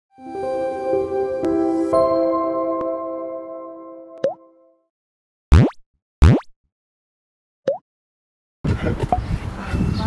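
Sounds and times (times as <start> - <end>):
cartoon pops: 5.5 - 6.5
cartoon rising blip: 5.5 - 6.5.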